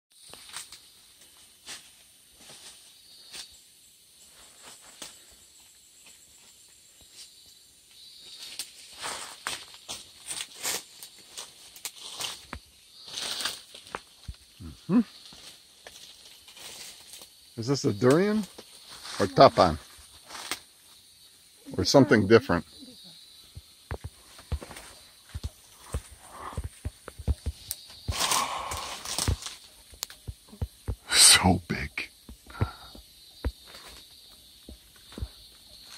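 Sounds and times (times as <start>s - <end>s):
rustle of leaves and twigs: 0.1s - 31.1s, 31.7s - 35.9s
footsteps in dry leaves: 8.4s - 17.4s, 24.0s - 30.3s.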